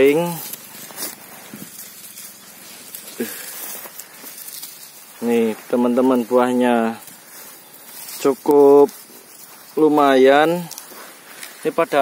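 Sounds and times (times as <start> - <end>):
dry leaves crunching underfoot: 0.0 - 12.0.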